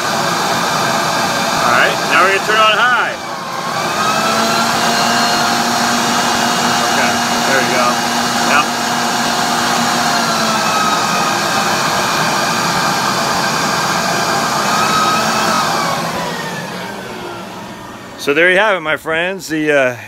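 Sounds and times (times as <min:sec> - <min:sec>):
leaf blower spinning down: 0:00.0 - 0:18.7
leaf blower whining: 0:00.0 - 0:18.9.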